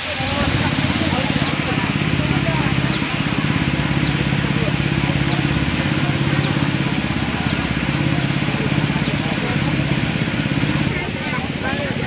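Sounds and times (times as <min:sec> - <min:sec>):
faint voices: 0:00.0 - 0:12.0
small engine idling: 0:00.0 - 0:12.0.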